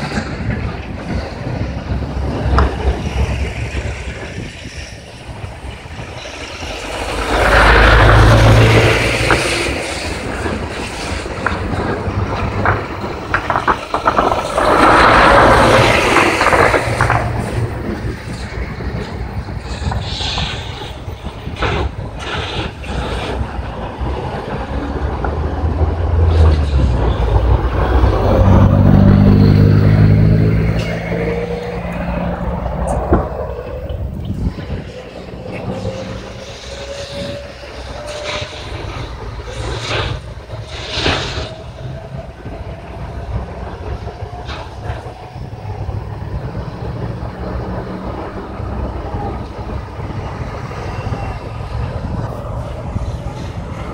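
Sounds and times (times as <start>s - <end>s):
vehicle engine drone: 0.0s - 53.9s
slowly rising tone: 24.2s - 39.6s.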